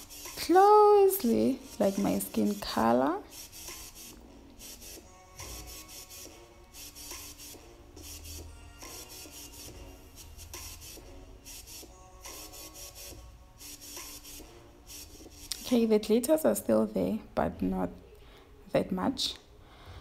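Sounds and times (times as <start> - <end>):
makeup brush swishing: 0.0 - 15.8.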